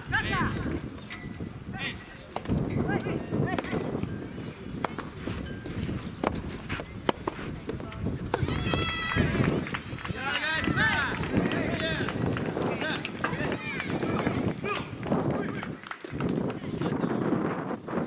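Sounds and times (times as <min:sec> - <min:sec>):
voices shouting and cheering: 0:00.0 - 0:00.8, 0:01.6 - 0:03.9, 0:07.5 - 0:18.0
rackets hitting ball: 0:02.3 - 0:04.1, 0:04.8 - 0:09.5, 0:12.8 - 0:14.9.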